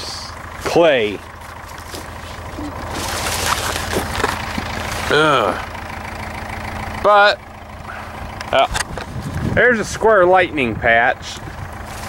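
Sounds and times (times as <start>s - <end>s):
wind buffeting microphone: 8.7s - 11.9s.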